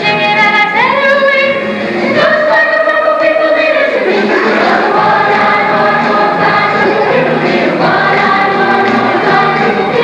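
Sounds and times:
choir singing long notes: 4.2 - 10.0.

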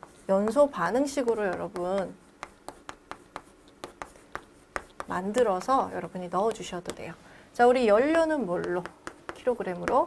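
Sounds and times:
chalk scratching on chalkboard: 0.0 - 7.1.

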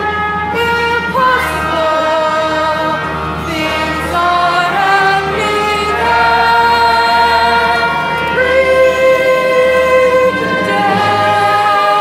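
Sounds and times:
chorus singing held notes: 0.0 - 12.0.

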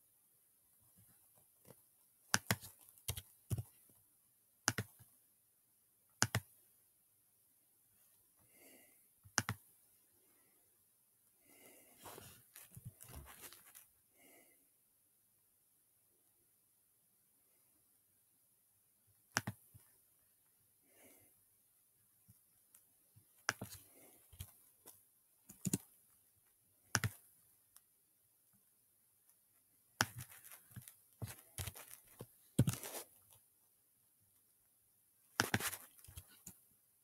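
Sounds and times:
mouse clicks: 4.6 - 5.1, 6.2 - 6.6, 9.3 - 9.7, 19.3 - 19.6
computer keyboard keystrokes: 25.5 - 25.8.

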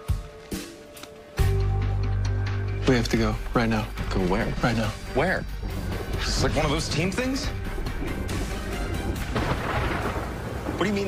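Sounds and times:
background score music: 0.0 - 11.0
deep steady rumble: 3.3 - 10.8.

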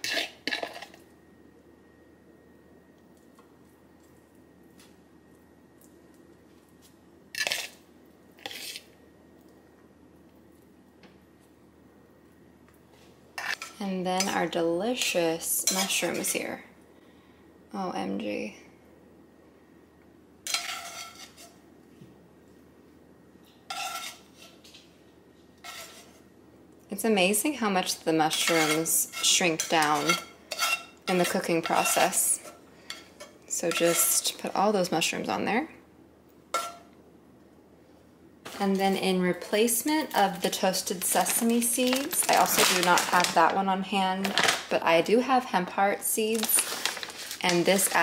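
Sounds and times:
fork scraping spread on toast: 0.0 - 1.0, 8.4 - 8.9, 25.6 - 26.2
spatula scraping frying pan: 0.0 - 1.0, 7.3 - 7.8, 8.4 - 8.9, 13.4 - 13.8, 20.5 - 21.6, 23.7 - 24.8, 25.6 - 26.2, 28.2 - 34.4, 36.5 - 36.8.

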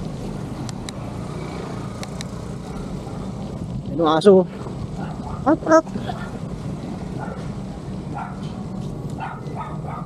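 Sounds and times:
bicycle tyres rolling on concrete: 0.0 - 10.0.

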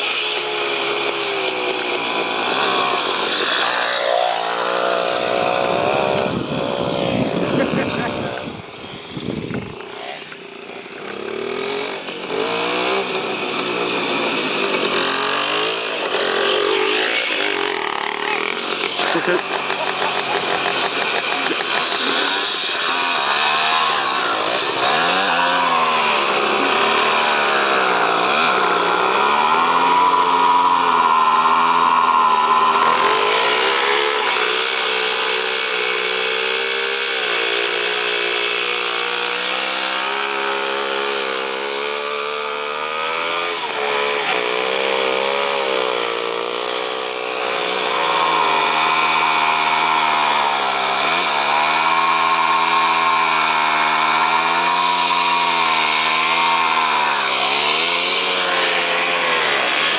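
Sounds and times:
two-stroke engines revving: 0.0 - 59.9
wheels spinning in sand: 0.0 - 59.9.

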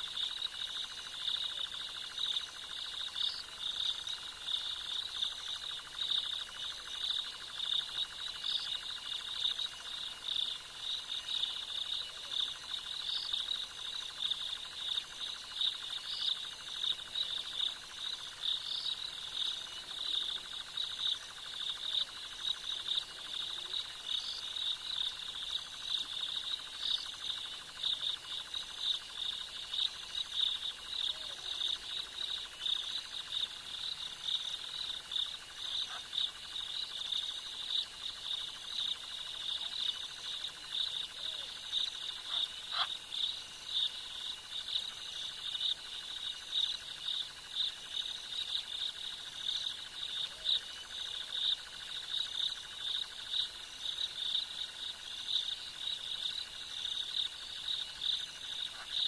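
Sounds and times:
crickets and insects chorus: 0.0 - 59.0.

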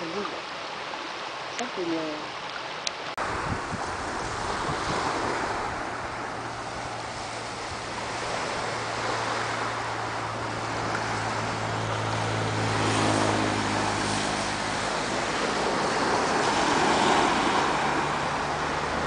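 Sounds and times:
low engine hum: 3.1 - 19.0
waves washing up pebbly beach: 3.2 - 19.0.

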